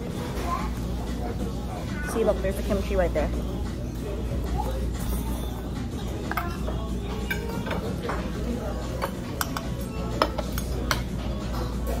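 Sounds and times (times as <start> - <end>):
background chatter: 0.0 - 12.0
background music: 1.0 - 12.0
metal utensils clinking on a bowl: 5.0 - 12.0.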